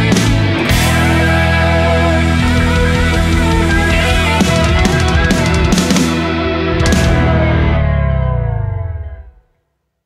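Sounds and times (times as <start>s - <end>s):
guitar chord ringing out: 0.6s - 9.4s.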